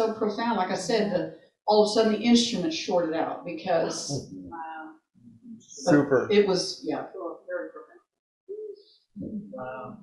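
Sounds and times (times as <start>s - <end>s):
person talking: 0.0s - 4.9s, 5.5s - 7.9s, 8.5s - 10.0s
low hummed murmur: 3.7s - 4.8s, 5.7s - 6.4s.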